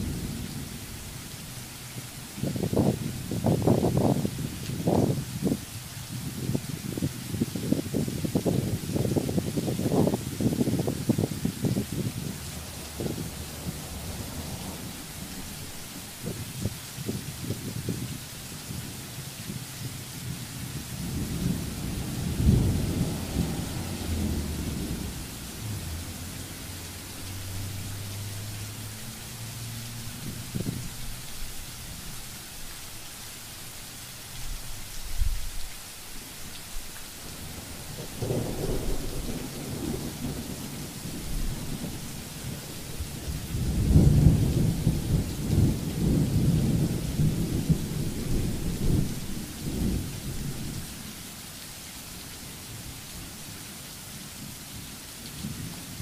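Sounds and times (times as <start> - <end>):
low rumbles: 0.0 - 4.1, 9.9 - 16.6, 20.6 - 30.8
rain falling on pavement: 0.0 - 56.0.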